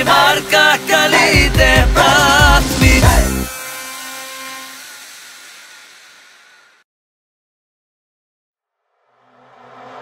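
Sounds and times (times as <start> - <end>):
pop song with band and voice: 0.0 - 3.5.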